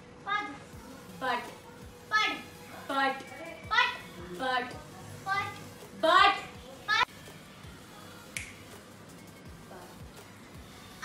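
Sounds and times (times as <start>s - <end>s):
faint music from headphones: 0.0s - 11.0s
finger snap: 8.3s - 8.8s.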